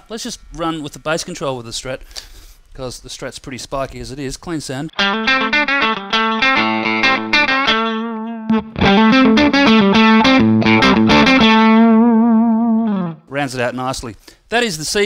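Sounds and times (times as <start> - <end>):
clean electric guitar: 4.9 - 13.3.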